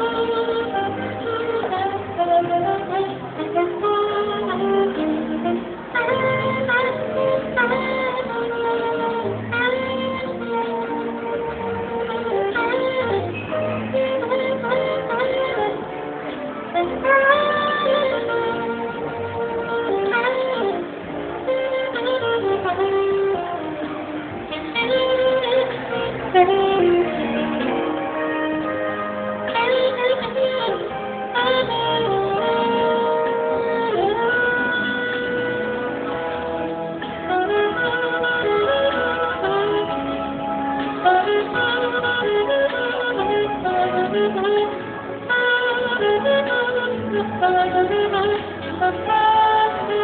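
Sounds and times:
keyboard accompaniment: 0.0s - 50.0s
saxophone melody: 0.0s - 50.0s.

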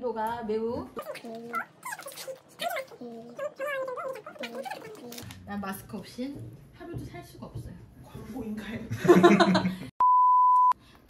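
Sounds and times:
voice: 0.0s - 9.3s.

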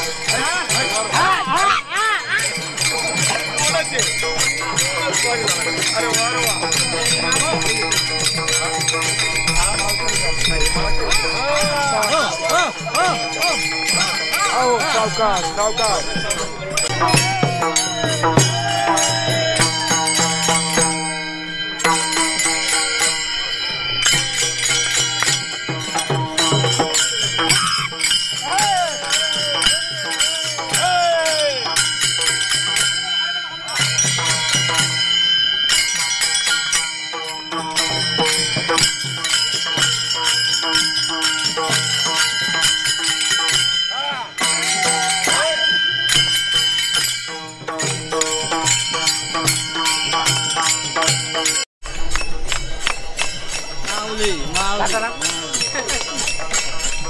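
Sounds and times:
voices chanting: 0.0s - 34.8s, 43.6s - 46.4s
hand cymbals clashing: 0.0s - 57.0s.

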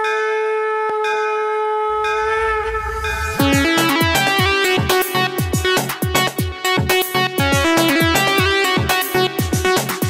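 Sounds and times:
conch shell blown: 0.0s - 5.8s
low rumble: 1.9s - 4.7s.

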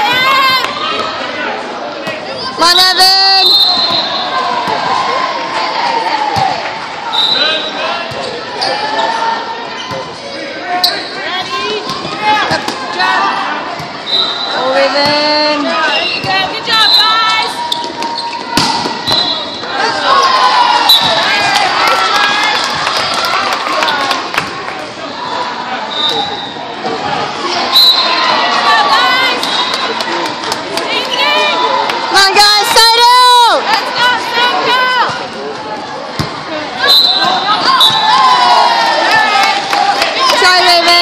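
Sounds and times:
players and spectators shouting: 0.0s - 41.0s
volleyball smack: 17.9s - 19.3s.

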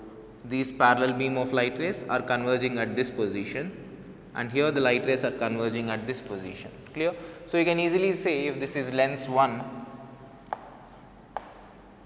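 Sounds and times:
chalk scratching on chalkboard: 9.0s - 12.0s
chalk tapping on board: 9.5s - 12.0s.

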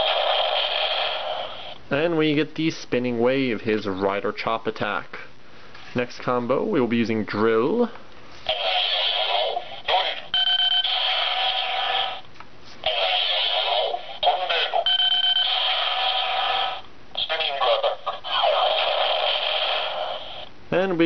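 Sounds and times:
toy recorded voice calls: 8.5s - 12.2s, 12.8s - 20.4s
held electronic tones: 9.5s - 12.2s, 13.6s - 17.3s.

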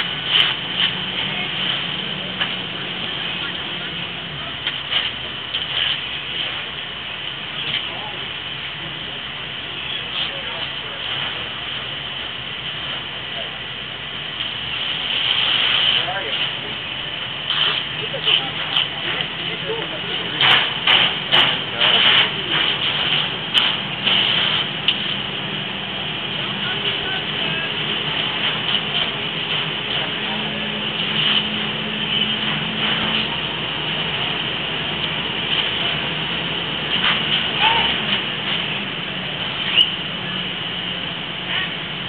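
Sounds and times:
fire truck engines droning: 0.0s - 42.0s
indistinct voices: 0.0s - 42.0s.

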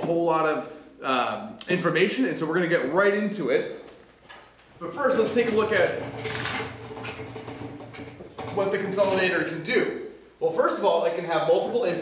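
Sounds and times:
frame rattling and scraping: 5.0s - 9.5s.

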